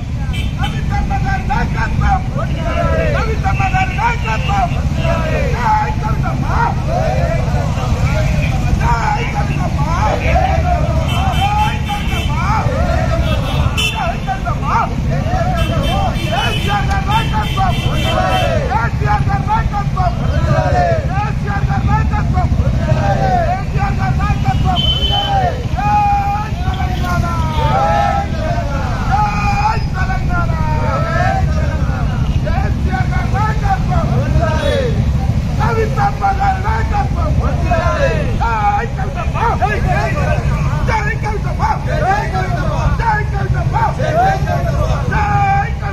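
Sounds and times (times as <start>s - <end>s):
crowd of riders shouting: 0.0s - 45.9s
motorcycle engines running: 0.0s - 45.9s.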